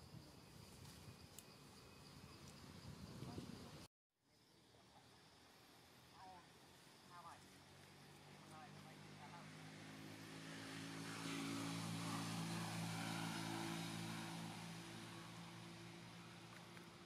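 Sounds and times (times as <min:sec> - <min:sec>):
aircraft engine drone: 0:04.6 - 0:17.0.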